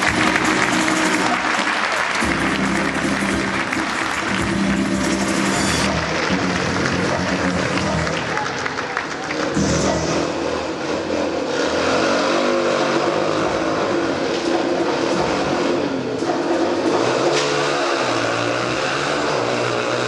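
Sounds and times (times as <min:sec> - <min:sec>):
motorcycle engines revving: 0:00.0 - 0:20.0.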